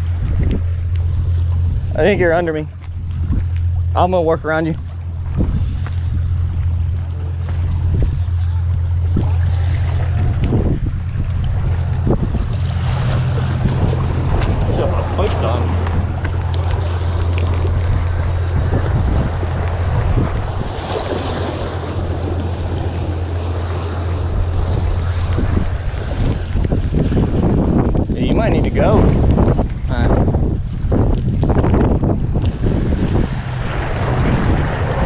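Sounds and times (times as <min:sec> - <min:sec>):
wind buffeting microphone: 0:00.0 - 0:35.0
waves washing against rocks: 0:04.7 - 0:35.0.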